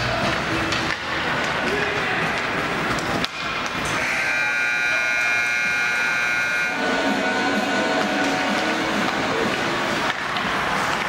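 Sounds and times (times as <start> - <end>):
rink crowd noise: 0.0 - 11.0
ice rink horn blast: 3.9 - 9.6.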